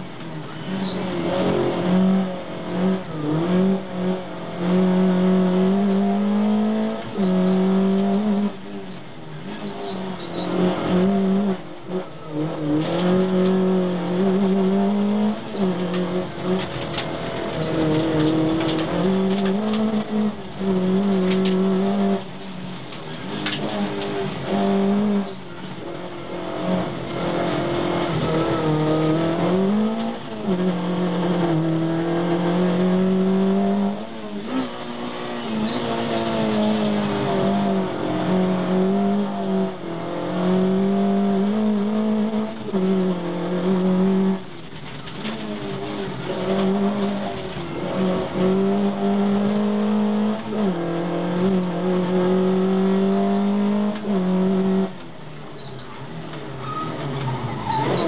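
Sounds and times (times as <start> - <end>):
car engine at high revs: 0.0 - 58.0.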